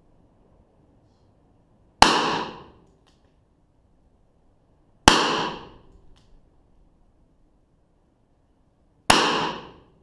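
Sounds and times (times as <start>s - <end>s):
revolver gunshots: 2.0s - 2.8s, 5.1s - 5.9s, 9.1s - 10.0s.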